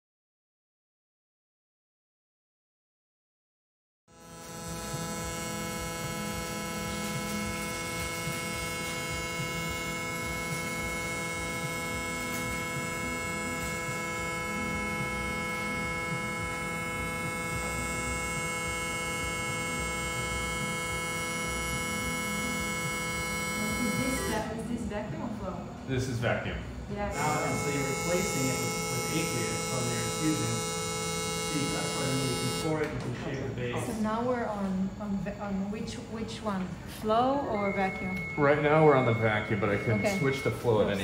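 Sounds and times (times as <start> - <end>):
machine electric hum: 4.1 - 41.0
fixed high tones: 27.0 - 32.8, 37.5 - 41.0.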